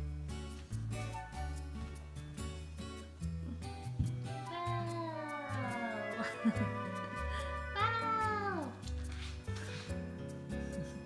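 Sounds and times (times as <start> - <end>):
background music: 0.0 - 11.0
cat meowing: 4.5 - 6.4.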